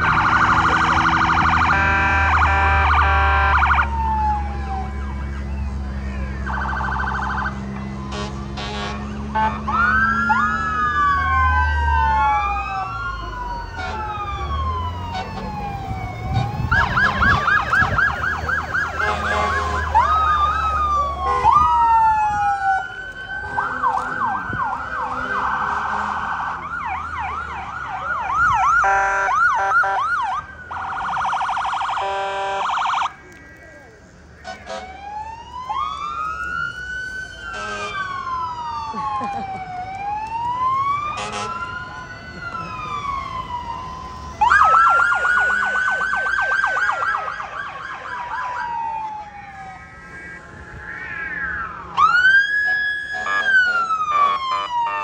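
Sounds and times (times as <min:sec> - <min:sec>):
heavy engine rumbling: 0:00.0 - 0:29.5
emergency vehicle sirens wailing: 0:00.0 - 0:55.0.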